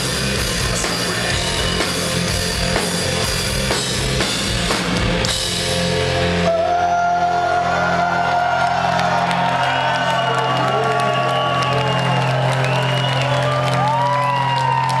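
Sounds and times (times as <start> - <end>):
audience whooping and cheering: 6.4 - 15.0.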